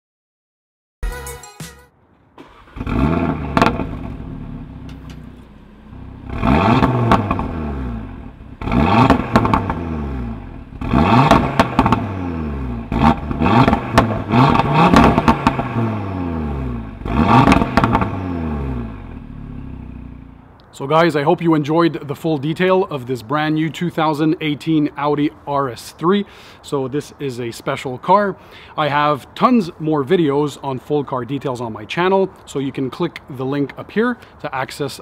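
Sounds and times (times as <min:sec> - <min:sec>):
car engine revving: 0:02.4 - 0:20.4
exhaust crackles: 0:02.4 - 0:21.1.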